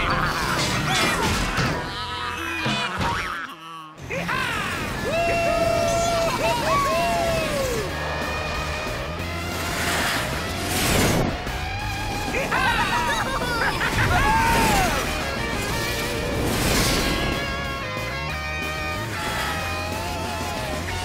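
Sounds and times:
cartoon background music: 0.0s - 21.0s
rocket whoosh: 9.5s - 11.6s.

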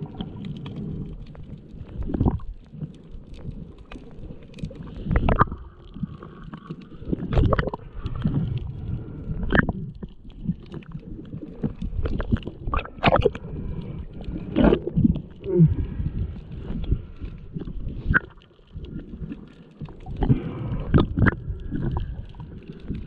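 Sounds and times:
muffled underwater rumbling: 0.0s - 23.0s.

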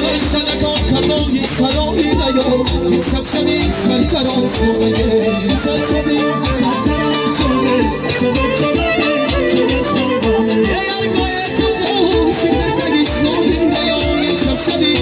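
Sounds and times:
keyboard string-like melody: 0.0s - 15.0s
steady drum beat: 0.0s - 15.0s.

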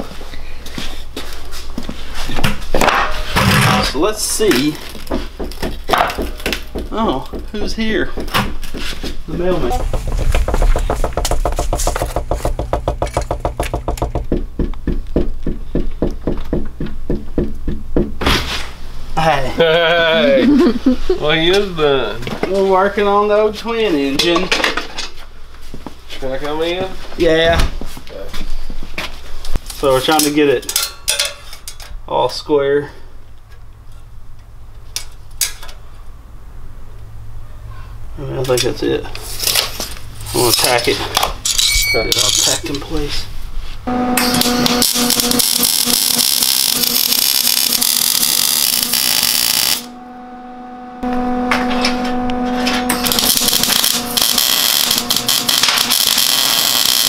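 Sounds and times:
door opening: 9.5s - 14.6s
knocking on wooden door: 9.6s - 18.2s
steady low hum: 43.2s - 55.9s.

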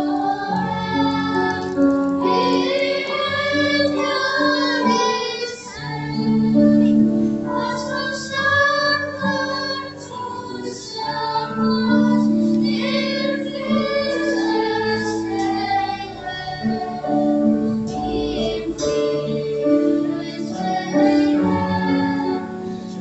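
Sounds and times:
children singing: 0.0s - 23.0s
instrumental accompaniment: 0.0s - 23.0s.

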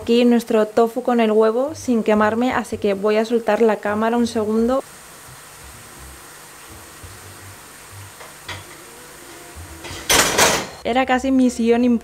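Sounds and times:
faint sizzling hiss: 0.0s - 12.0s
ceramic plate clattering on metal: 9.8s - 10.8s.

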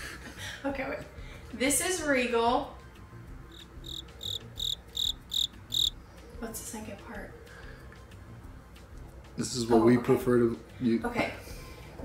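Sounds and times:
cricket chirping: 3.5s - 6.0s.

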